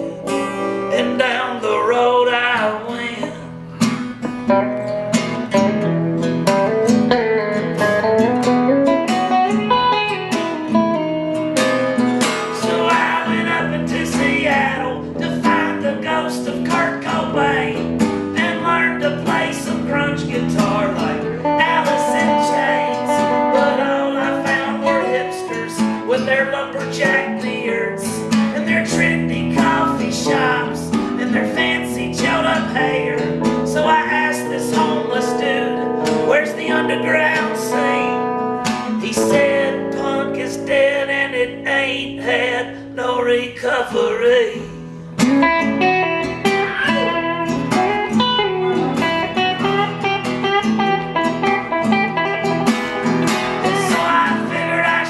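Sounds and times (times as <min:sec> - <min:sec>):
electric guitar lead lines: 0:00.0 - 0:55.0
strummed acoustic guitar: 0:00.0 - 0:55.0.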